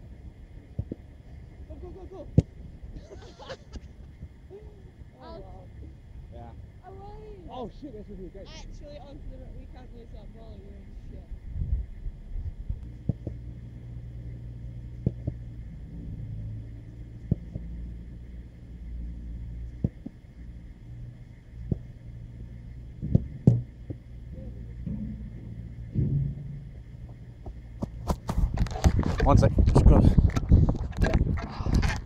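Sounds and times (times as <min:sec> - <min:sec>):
wind rumble on microphone: 0:00.0 - 0:32.0.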